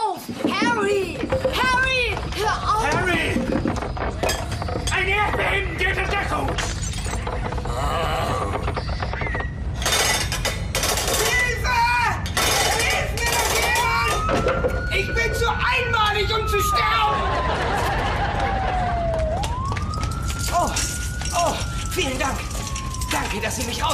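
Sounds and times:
things breaking and shattering: 0.3s - 11.6s, 12.2s - 15.5s, 19.3s - 23.9s
people shouting and crying: 11.1s - 19.6s
long wail: 15.0s - 23.4s.

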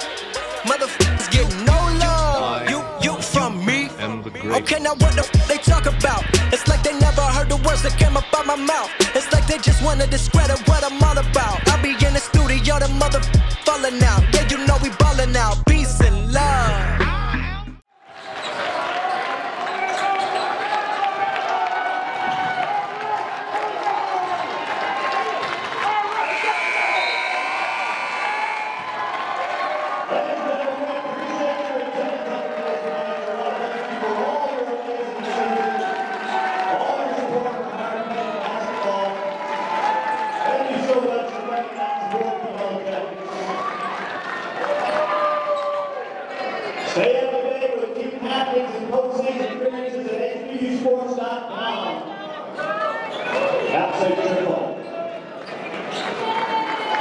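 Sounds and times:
voices calling out: 0.0s - 8.1s
murmur of crowd voices: 0.0s - 14.6s, 45.8s - 57.0s.

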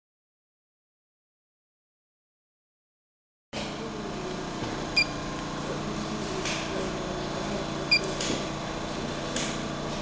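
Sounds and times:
low electrical hum: 3.6s - 10.0s
short high key-press beeps: 7.9s - 8.1s.

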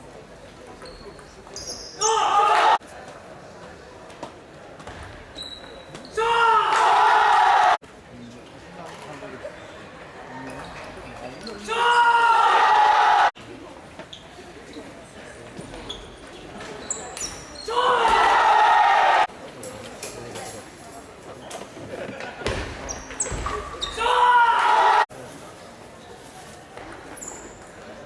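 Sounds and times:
shoe squeaks on court: 0.8s - 2.1s, 5.0s - 6.2s, 15.6s - 17.7s, 22.8s - 24.0s, 26.8s - 27.9s
team shouting a loud cheer: 2.0s - 2.8s, 6.2s - 7.8s, 11.7s - 13.4s, 17.7s - 19.3s, 24.0s - 25.1s.

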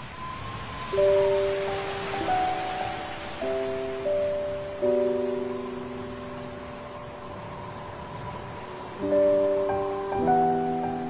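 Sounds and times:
ocean surf: 0.0s - 11.0s
soft relaxation music chord: 0.0s - 11.0s.

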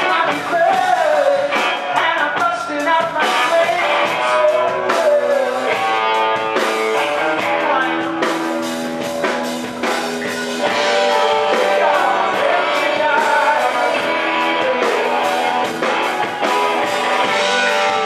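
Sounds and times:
male singer: 0.0s - 8.7s, 10.3s - 15.9s
electric guitar: 0.0s - 18.0s.

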